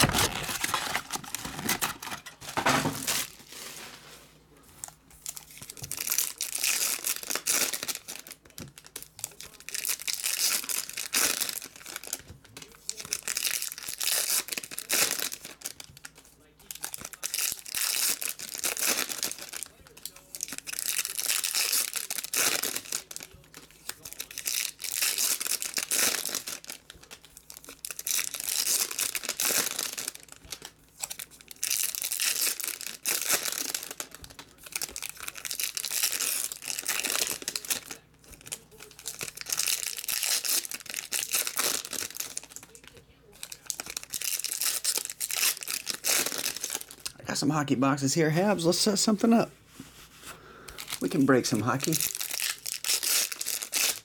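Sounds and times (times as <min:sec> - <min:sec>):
foil packs tearing and crinkling: 0:00.0 - 0:04.0, 0:05.2 - 0:47.1, 0:50.8 - 0:54.0.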